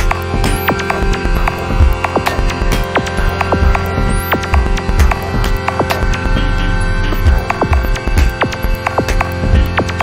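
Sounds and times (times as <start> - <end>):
drone of held tones: 0.0 - 10.0
pulsing deep bass: 0.0 - 10.0.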